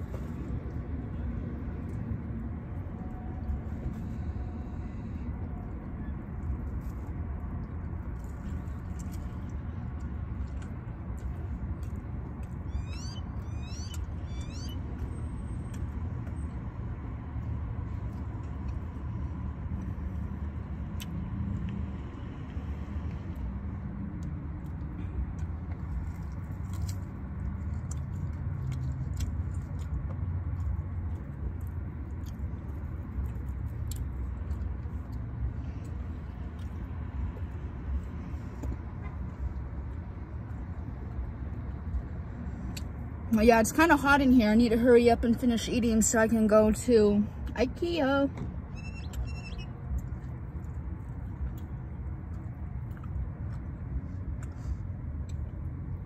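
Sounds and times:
steady low rumble in car: 0.0 - 56.0
high squeaky chirps: 12.6 - 14.8, 48.7 - 49.7.

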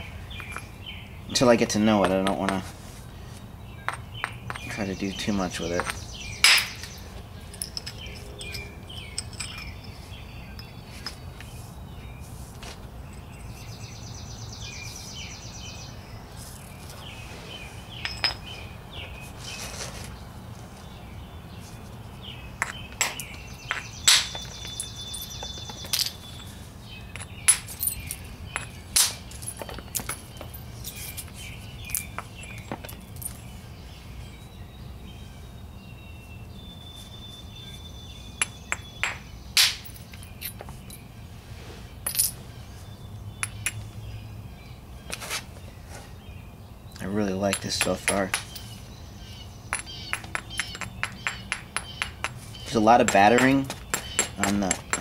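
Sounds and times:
hammerstone knocking on stone: 2.0 - 2.6, 3.9 - 4.7, 5.8 - 6.7, 38.4 - 39.2, 49.7 - 52.4, 53.0 - 55.0.

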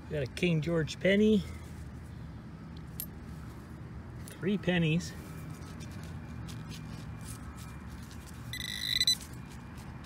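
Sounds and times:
hand rustling through soil: 5.2 - 8.5.

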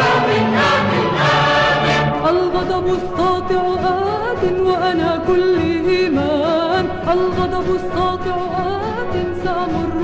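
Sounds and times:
choir holding long notes: 0.0 - 2.7
song accompaniment: 0.0 - 10.0.

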